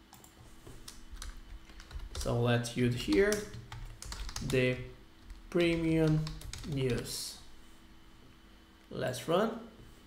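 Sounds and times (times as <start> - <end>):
keyboard typing: 0.1 - 2.3, 3.0 - 7.2.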